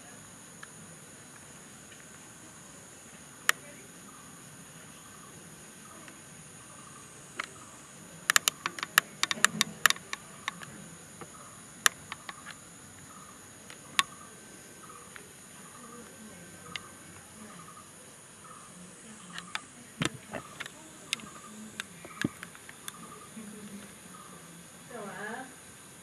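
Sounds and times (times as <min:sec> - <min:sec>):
faint insect chirps: 0:00.0 - 0:26.0
high-pitched insect drone: 0:00.0 - 0:26.0
sharp clicks: 0:07.3 - 0:07.6, 0:08.2 - 0:14.2, 0:16.1 - 0:17.0, 0:19.2 - 0:23.9.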